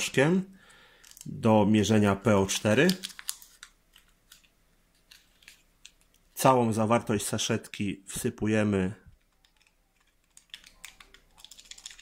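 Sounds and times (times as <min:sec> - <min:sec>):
foil sachet crinkling clicks: 0:01.0 - 0:01.3, 0:02.5 - 0:06.2, 0:09.2 - 0:12.0.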